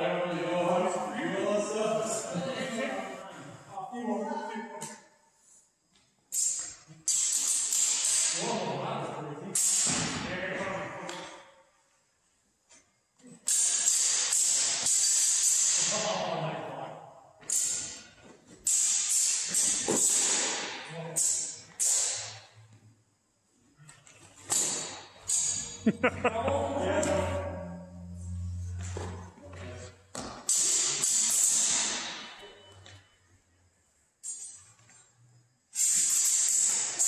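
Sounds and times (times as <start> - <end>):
swords clashing in a hall: 5.9 - 11.7, 13.2 - 22.8, 23.9 - 25.9, 26.5 - 33.2, 34.2 - 35.0, 35.7 - 37.0.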